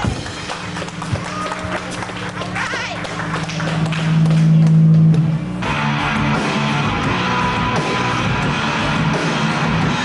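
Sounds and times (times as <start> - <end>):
drum and cymbal hits: 4.1 - 10.0
rock band playing live: 4.1 - 10.0.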